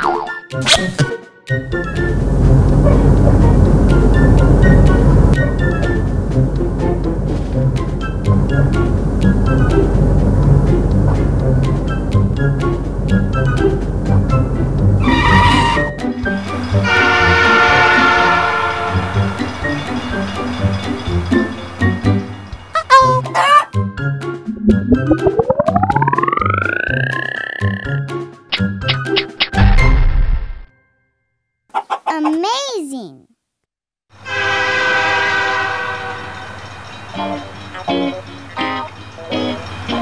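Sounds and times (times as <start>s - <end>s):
train horn: 15.0s - 16.0s, 16.8s - 19.4s, 34.2s - 36.6s.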